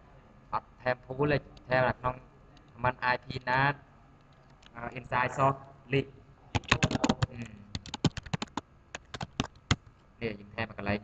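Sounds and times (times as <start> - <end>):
computer keyboard typing: 6.5 - 9.9.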